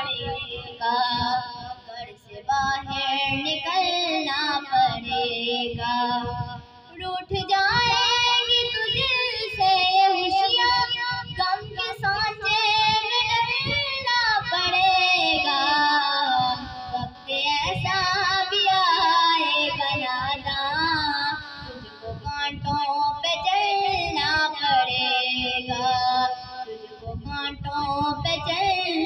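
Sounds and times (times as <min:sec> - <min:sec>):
child singing: 0:00.0 - 0:29.0.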